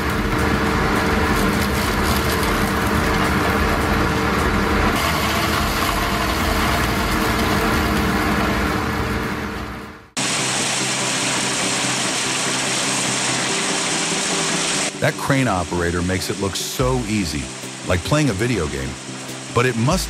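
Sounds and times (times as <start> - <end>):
strapping cutter humming: 0.0 - 9.8
diesel truck engine: 0.0 - 10.4, 11.1 - 20.0.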